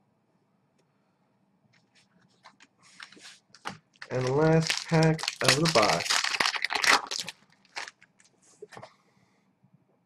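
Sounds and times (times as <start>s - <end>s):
foil pack tearing: 4.0s - 8.0s
foil rustling: 4.0s - 8.0s.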